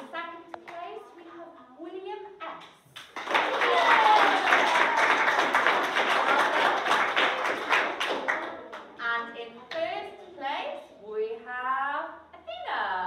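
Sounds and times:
children clapping and cheering: 0:03.0 - 0:09.0.

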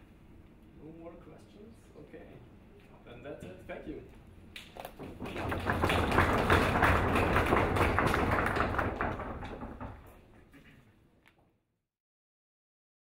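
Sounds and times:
audience applauding: 0:04.8 - 0:10.1.

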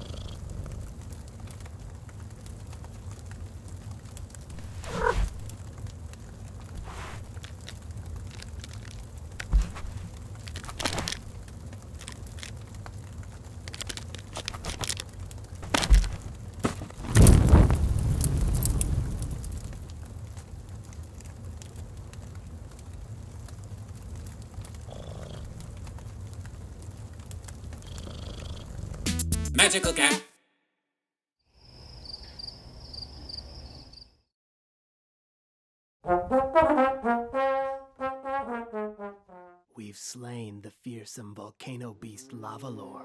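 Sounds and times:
log fire crackling: 0:00.0 - 0:29.1
fire popping: 0:00.0 - 0:29.4.

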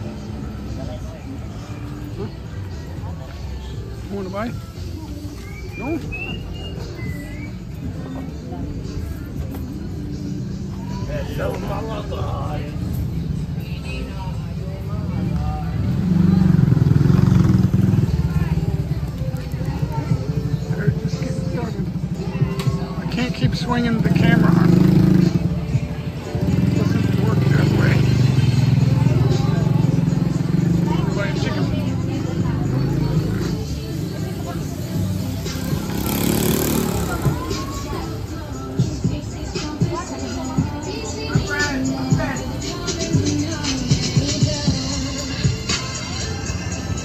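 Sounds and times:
faint voices: 0:00.0 - 0:47.0
music playing: 0:00.0 - 0:47.0
people talking: 0:13.6 - 0:38.8
motor vehicle passing: 0:14.9 - 0:46.1.

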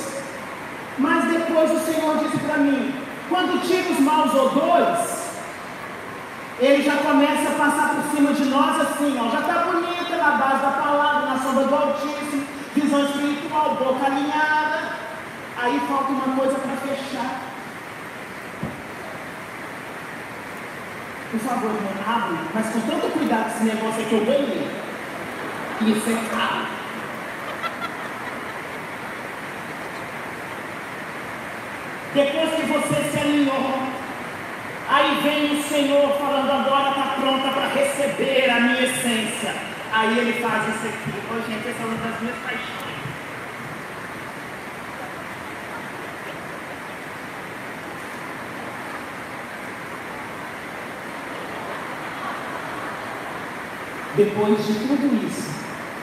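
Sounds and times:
steady background hiss: 0:00.0 - 0:56.0.

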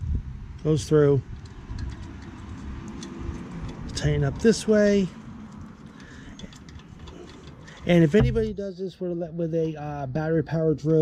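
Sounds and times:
bolt threading small ticks: 0:01.3 - 0:08.4
handling noise: 0:01.3 - 0:08.7.

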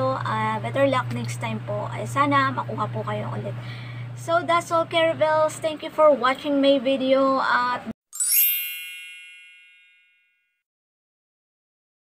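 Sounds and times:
bright chime ding: 0:08.2 - 0:10.6.

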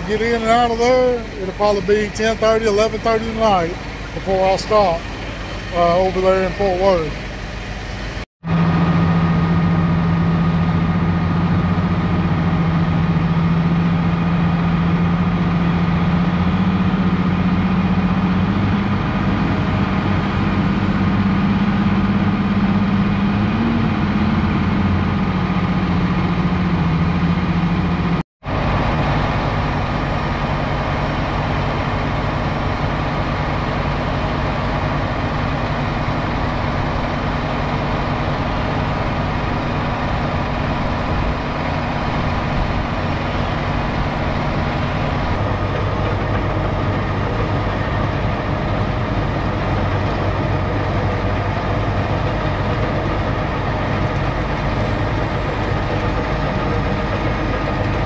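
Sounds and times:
heavy diesel engine running: 0:00.0 - 0:58.0.

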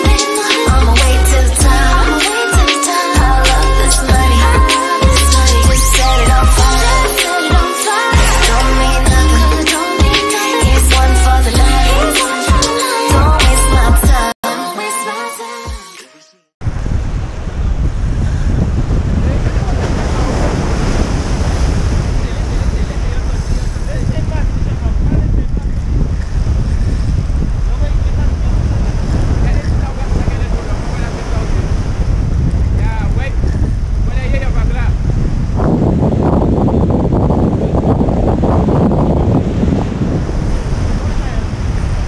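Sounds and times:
wind buffeting microphone: 0:16.6 - 0:42.0
waves breaking over rocks: 0:16.7 - 0:25.2.

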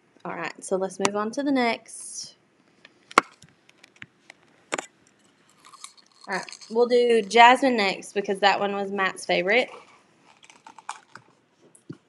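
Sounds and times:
craft supplies clicking and rustling: 0:05.6 - 0:07.3, 0:09.7 - 0:12.0.

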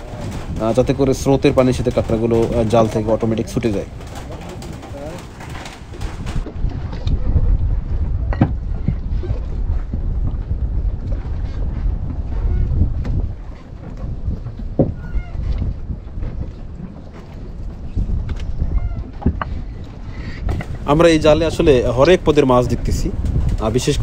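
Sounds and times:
low rumble: 0:06.1 - 0:23.8.

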